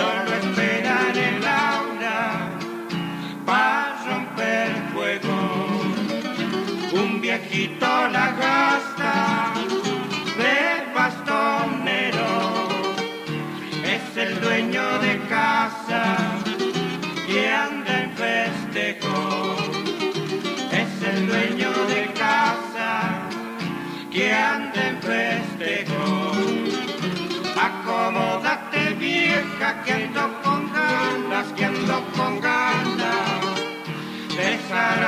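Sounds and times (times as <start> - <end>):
acoustic guitars strumming and plucking: 0.0 - 35.0.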